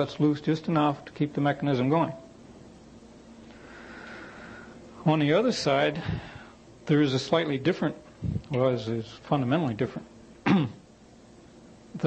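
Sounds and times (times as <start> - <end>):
faint room hum: 0.0 - 12.0
man clearing his throat: 10.4 - 10.9.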